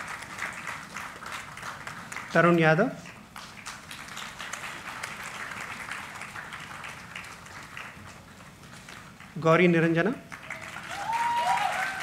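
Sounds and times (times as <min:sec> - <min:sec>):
audience applauding: 0:00.0 - 0:09.4, 0:10.0 - 0:12.0.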